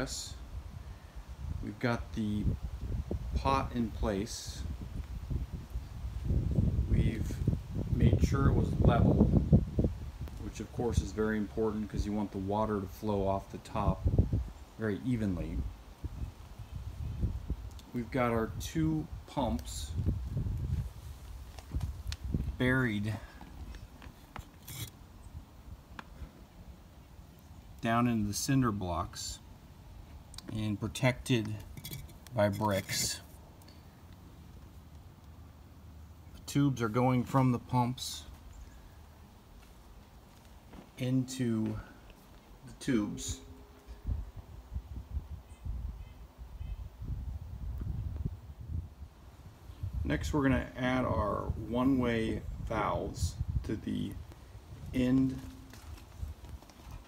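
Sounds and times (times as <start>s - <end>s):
wind on microphone: 2.2s - 11.1s, 13.7s - 14.6s, 15.6s - 17.7s, 18.5s - 23.9s, 43.2s - 50.4s, 51.0s - 57.0s
brick scraping: 24.2s - 25.0s, 31.5s - 33.4s.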